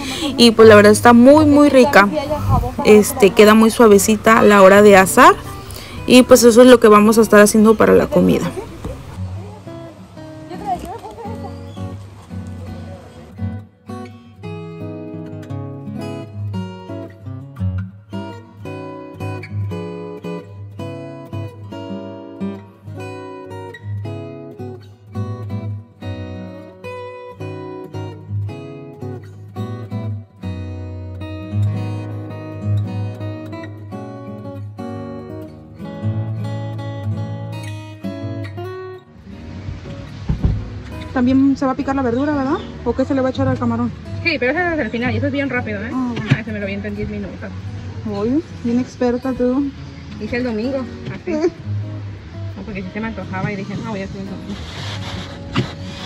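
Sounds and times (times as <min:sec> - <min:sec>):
acoustic guitar background music: 0:00.0 - 0:56.0.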